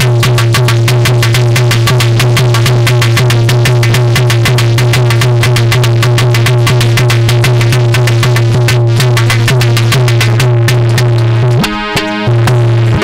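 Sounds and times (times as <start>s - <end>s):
hand drum fast rhythm: 0.0s - 13.0s
steady low drone: 0.0s - 13.0s
sustained melody line: 0.0s - 13.0s.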